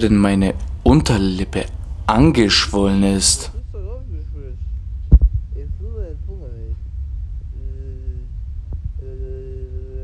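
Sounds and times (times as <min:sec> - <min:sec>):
low steady rumble: 0:00.0 - 0:10.0
sharp thump: 0:05.1 - 0:05.4
man mumbling: 0:07.5 - 0:08.4, 0:09.0 - 0:10.0.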